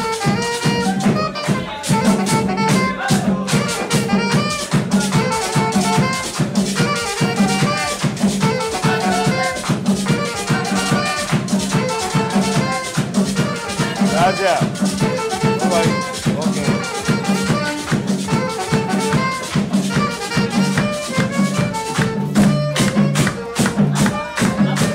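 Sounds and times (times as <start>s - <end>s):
hand drum: 0.0s - 24.9s
saxophone melody: 0.0s - 24.9s.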